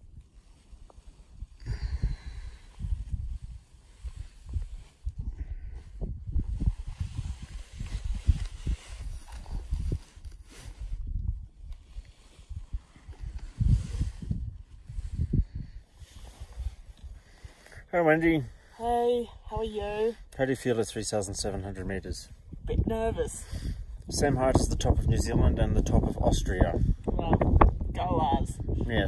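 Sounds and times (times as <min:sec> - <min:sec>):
wind buffeting microphone: 0:00.0 - 0:17.6, 0:21.9 - 0:29.0.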